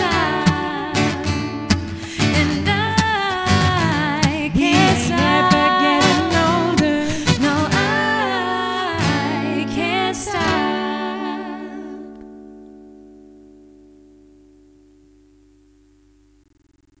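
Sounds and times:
woman and man singing: 0.0 - 12.2
acoustic guitar strumming: 0.0 - 14.7.

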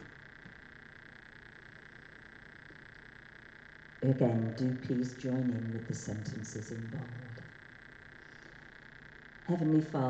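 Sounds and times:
faint steady buzzing: 0.0 - 10.0.

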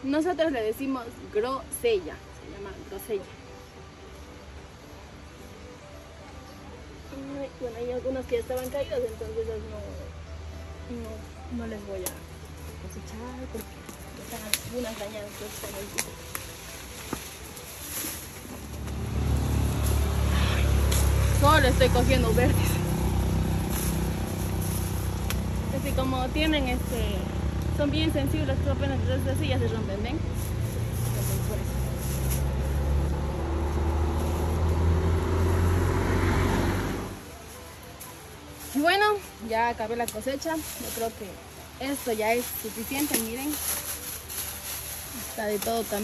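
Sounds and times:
vehicle engine rumble: 6.7 - 46.0.

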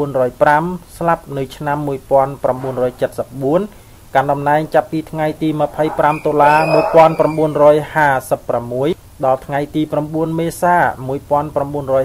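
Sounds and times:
narrator reading aloud: 0.0 - 12.0.

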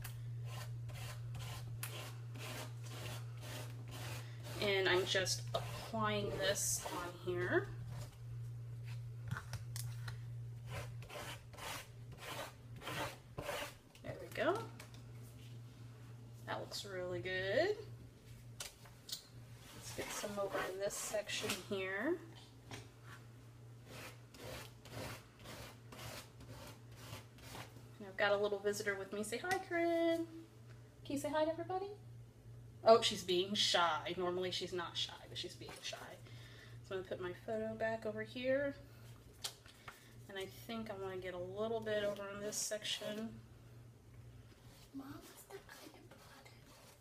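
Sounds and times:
steady low hum: 0.0 - 47.0
paste scraping through stencil: 0.4 - 7.1, 10.7 - 13.8.

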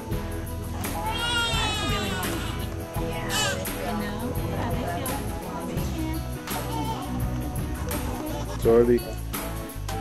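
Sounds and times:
background music: 0.0 - 10.0
newborn baby crying: 1.0 - 3.8, 6.6 - 7.3.

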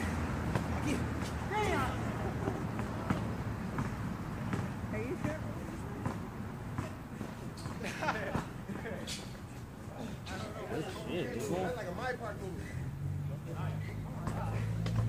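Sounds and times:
distant players calling out: 0.0 - 6.8, 8.4 - 15.0
ball bouncing on asphalt: 0.4 - 1.4, 2.6 - 7.8, 14.1 - 15.0.

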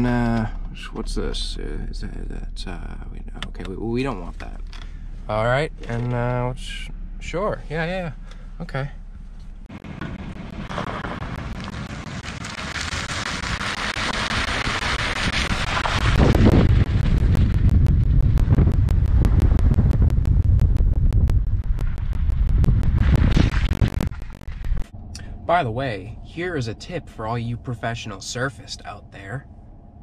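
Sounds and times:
wind buffeting microphone: 15.5 - 25.5.

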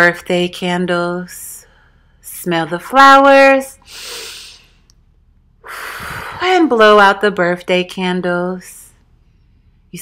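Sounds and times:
woman sniffing inhale: 3.8 - 4.8, 5.6 - 6.4.

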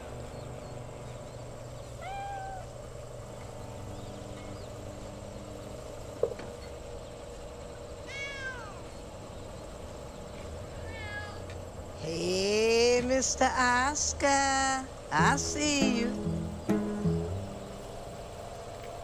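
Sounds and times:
steady low hum: 0.0 - 19.0
cat meowing: 2.0 - 2.8, 8.0 - 8.9, 10.7 - 11.5.

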